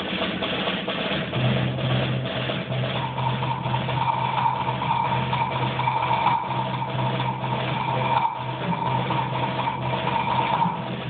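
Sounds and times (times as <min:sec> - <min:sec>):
percussion ensemble playing: 0:00.0 - 0:11.0.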